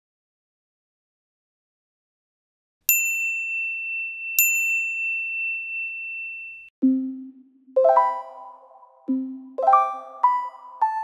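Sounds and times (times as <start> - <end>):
high bell-like ding: 2.9 - 6.7.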